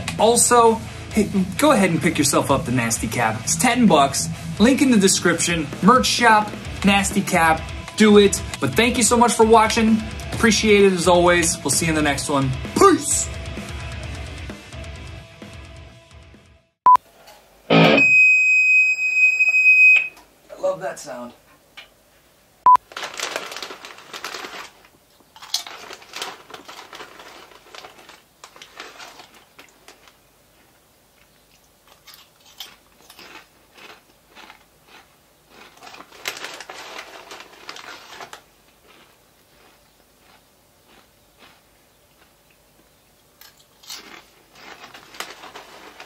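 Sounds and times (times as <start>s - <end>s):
short sharp beep: 17.7s - 20.2s
plastic packet crinkling: 22.8s - 30.2s, 31.9s - 41.5s, 43.4s - 46.0s
crunchy chewing: 22.9s - 46.0s.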